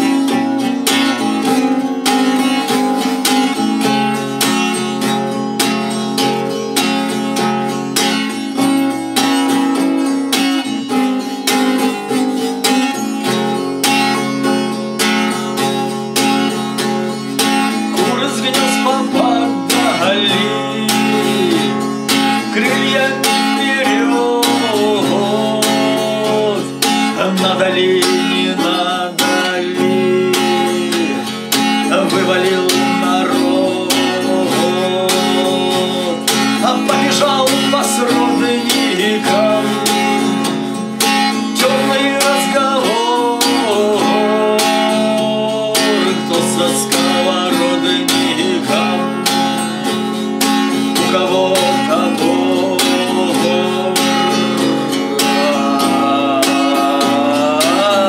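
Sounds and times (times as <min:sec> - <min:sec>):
acoustic guitar strummed: 0:00.0 - 0:58.0
man singing: 0:00.0 - 0:58.0.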